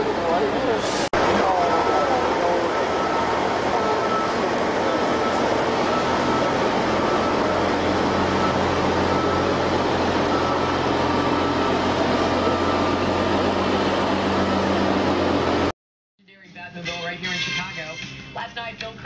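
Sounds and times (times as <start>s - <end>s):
diesel truck engine humming: 0.0s - 15.7s.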